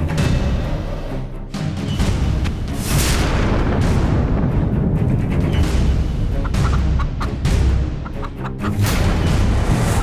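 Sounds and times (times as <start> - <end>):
background music score: 0.0 - 10.0.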